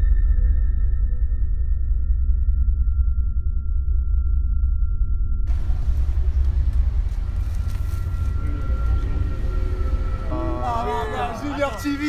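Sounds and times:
city street rumble: 5.5s - 12.0s.

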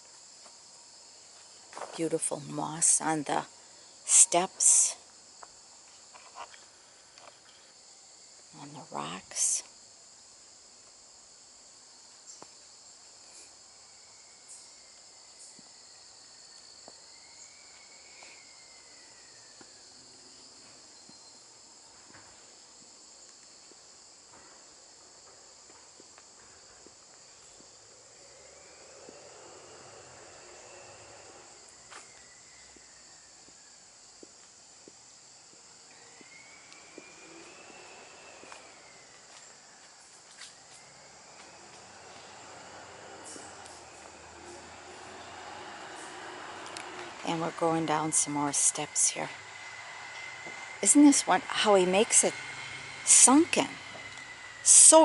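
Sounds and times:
high-pitched insect chorus: 0.0s - 55.0s
distant noise swells: 36.0s - 55.0s.

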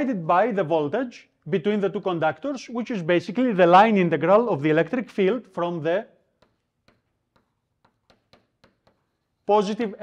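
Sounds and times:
chalk tapping on blackboard: 6.2s - 10.0s.

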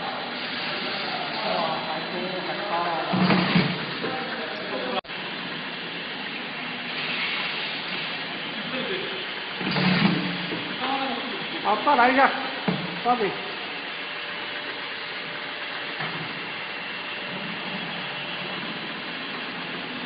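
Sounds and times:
labeling machine humming: 0.0s - 20.0s.

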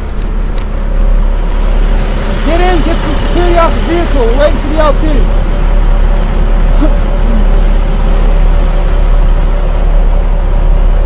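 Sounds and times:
steady low drone: 0.0s - 11.0s.

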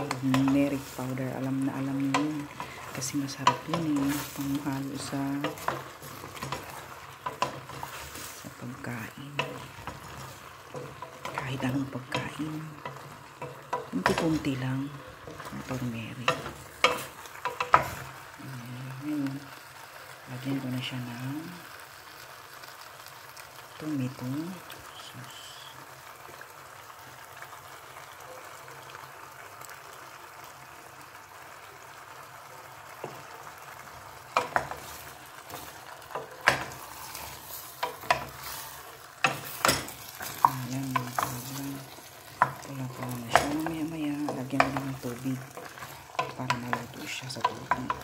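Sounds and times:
wooden spoon knocking and scraping pot: 0.0s - 18.2s, 33.0s - 48.0s
meat sizzling in a pot: 0.0s - 48.0s.

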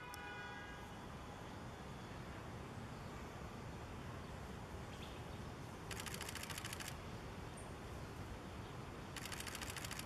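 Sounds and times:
rapid camera shutter clicks: 5.9s - 7.0s, 9.1s - 10.0s.

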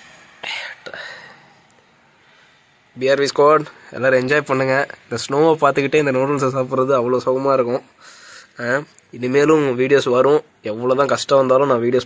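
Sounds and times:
person whispering breathily: 0.4s - 1.5s.

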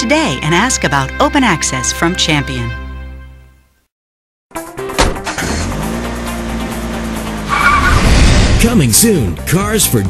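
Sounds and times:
commercial music: 0.0s - 3.8s, 4.5s - 10.0s
car engine running: 5.0s - 10.0s
tire squeal: 7.4s - 8.5s.

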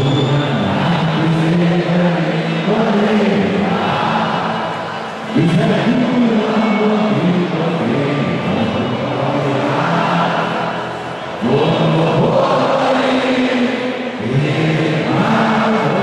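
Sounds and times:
voices singing in unison: 0.5s - 16.0s.

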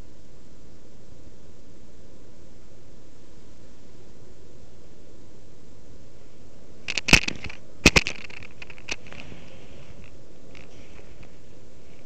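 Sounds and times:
background hiss: 0.0s - 12.0s
camera handling crackles and scrapes: 6.8s - 12.0s.

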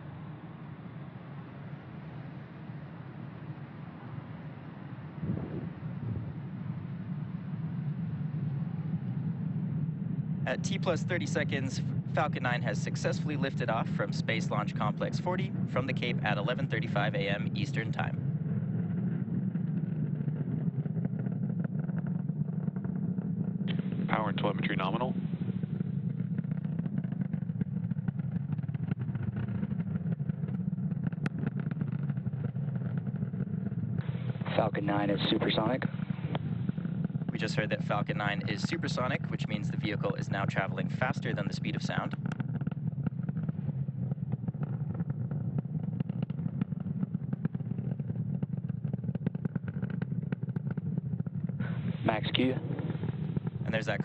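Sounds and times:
rocket engines rumbling and crackling: 0.0s - 54.0s.

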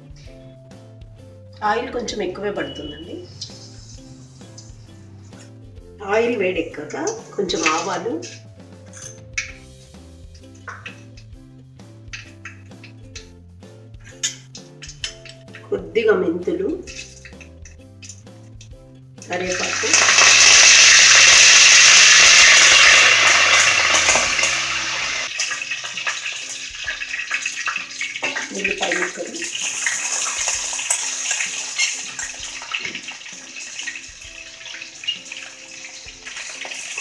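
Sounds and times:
faint background music: 0.0s - 37.0s
leaves sizzling in hot oil: 2.7s - 8.6s, 19.2s - 37.0s.

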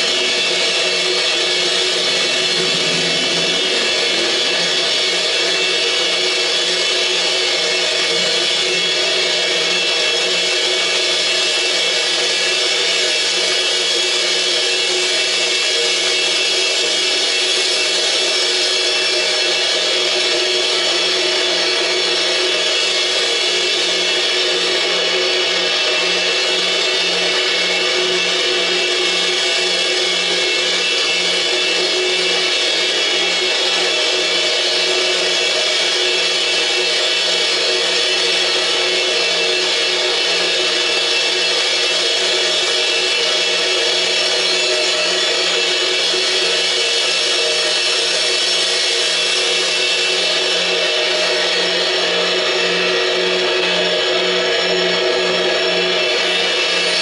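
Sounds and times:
low pulsing tone: 0.0s - 7.0s
electronic drone: 0.0s - 57.0s.

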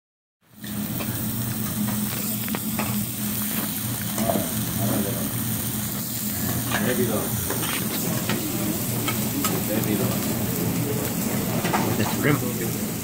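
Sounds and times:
food sizzling on a griddle: 0.5s - 13.0s.

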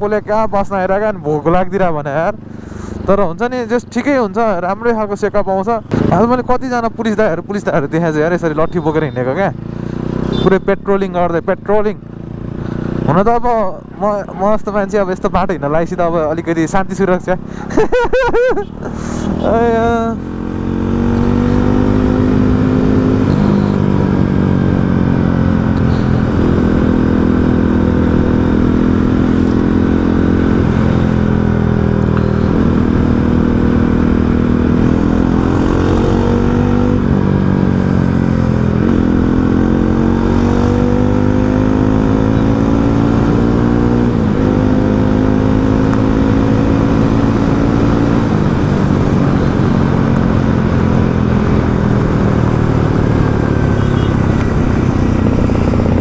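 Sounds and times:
road and wind rush: 0.0s - 56.0s
motorcycle engine revving: 5.8s - 17.8s, 18.6s - 56.0s.

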